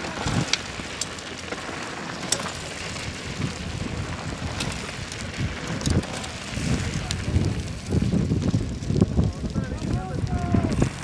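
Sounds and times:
bike tyres crunching over rock: 0.0 - 11.0.

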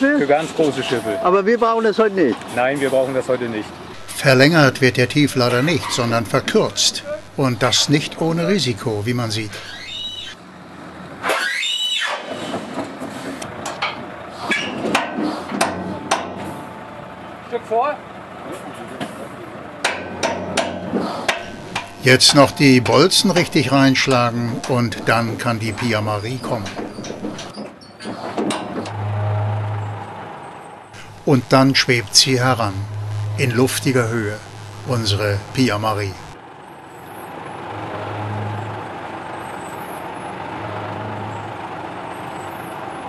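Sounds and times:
trailer squealing: 3.9 - 10.4, 21.4 - 27.6, 28.8 - 36.4
steady low drone: 4.0 - 9.8, 21.4 - 27.5, 28.9 - 30.2, 31.0 - 36.4.

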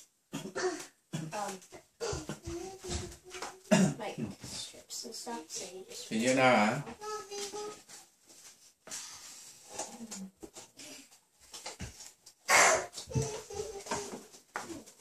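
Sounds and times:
girl coughing: 0.4 - 1.4, 2.0 - 2.4, 3.7 - 4.1, 12.5 - 13.0.

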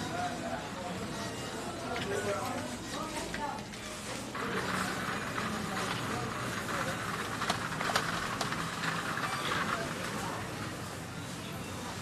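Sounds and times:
shopping carts rolling and clattering: 1.1 - 12.0.

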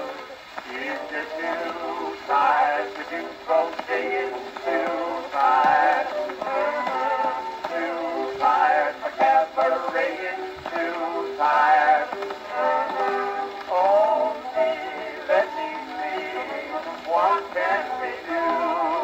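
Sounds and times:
dance band on old record: 0.0 - 19.0.

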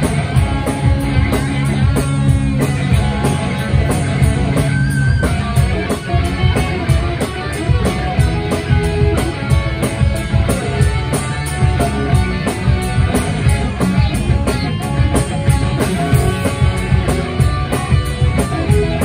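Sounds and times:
bass guitar: 0.0 - 19.0
drum kit beat: 0.0 - 19.0
electric guitars: 0.0 - 19.0.

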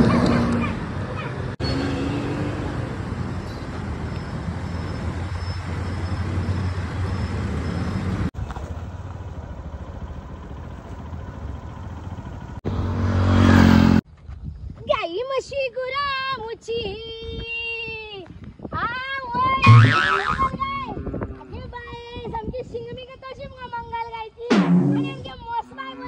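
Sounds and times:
vehicle engine approaching: 0.0 - 14.0
road traffic hum: 0.0 - 14.1, 19.6 - 22.3.

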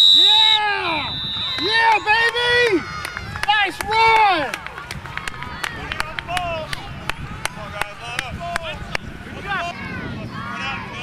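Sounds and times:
people shouting excitedly: 5.4 - 11.0.

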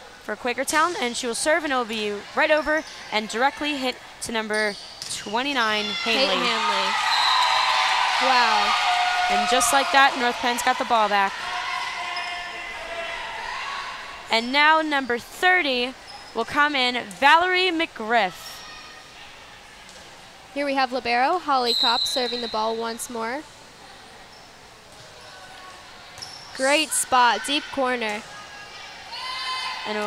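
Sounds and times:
team cheering together: 5.9 - 14.3.

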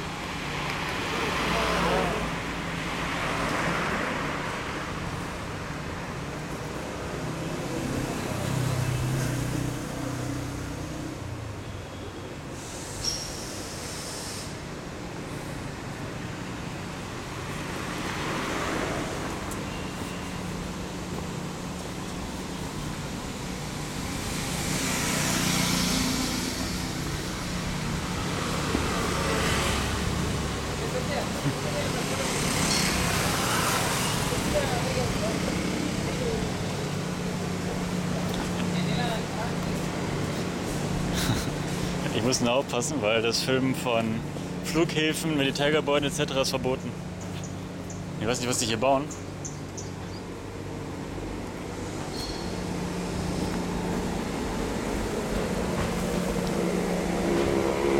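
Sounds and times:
vehicles passing: 0.0 - 57.9
motorcycle passing: 23.9 - 42.2, 52.5 - 57.9.

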